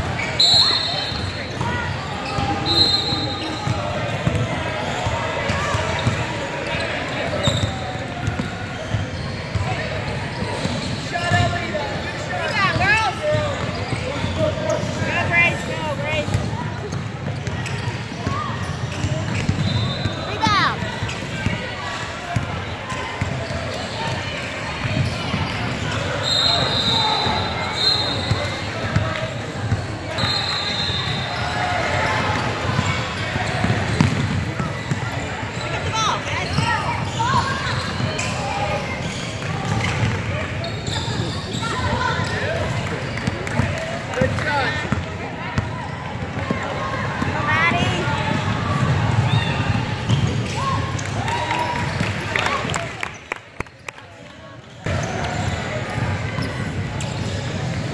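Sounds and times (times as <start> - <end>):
echoing shouts and voices: 0.0 - 53.2
high whistle: 0.2 - 1.3, 2.6 - 3.6, 26.2 - 28.3, 30.1 - 31.3
basketball bouncing on wooden floor: 33.9 - 34.4.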